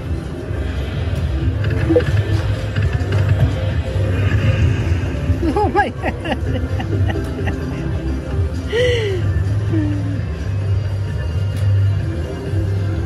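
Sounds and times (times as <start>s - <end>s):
low bass drone: 0.0s - 11.3s.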